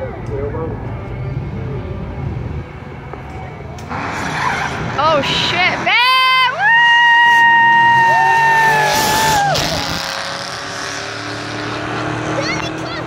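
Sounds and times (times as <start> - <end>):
car engines accelerating: 0.0 - 13.0.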